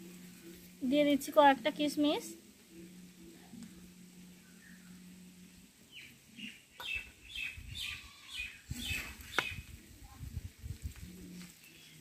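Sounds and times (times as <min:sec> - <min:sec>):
small bird chirping: 0:05.9 - 0:09.8.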